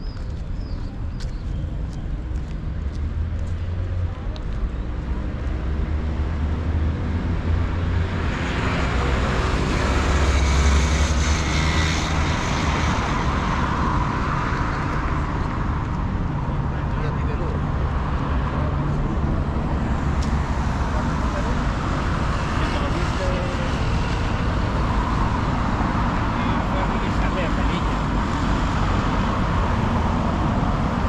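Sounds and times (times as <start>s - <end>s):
motor vehicle passing: 2.6s - 31.0s.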